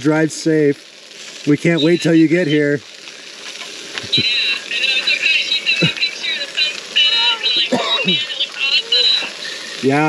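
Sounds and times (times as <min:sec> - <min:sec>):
hamburgers sizzling: 0:00.0 - 0:10.0
high-pitched warbling: 0:01.5 - 0:02.8, 0:04.0 - 0:10.0.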